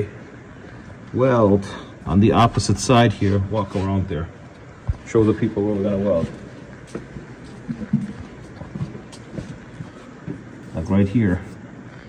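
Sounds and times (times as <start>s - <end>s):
low steady background noise: 0.0s - 12.0s
footsteps on concrete: 4.8s - 10.8s.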